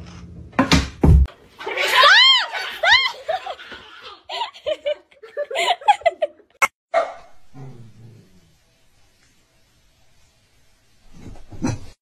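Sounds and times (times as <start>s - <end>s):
dog barking: 6.9s - 7.3s.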